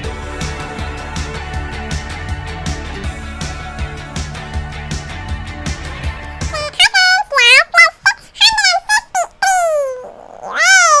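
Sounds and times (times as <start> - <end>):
girl calling out high-pitched: 6.5 - 11.0.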